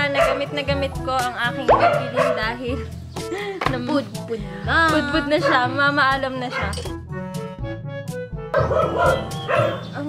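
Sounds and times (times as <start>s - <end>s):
dogs barking: 0.0s - 0.6s, 1.7s - 2.6s, 5.4s - 6.8s, 8.5s - 10.0s
background music: 0.0s - 10.0s.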